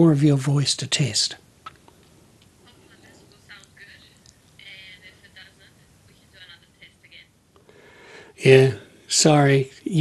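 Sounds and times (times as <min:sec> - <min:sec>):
woman talking over video call: 0:02.6 - 0:07.4.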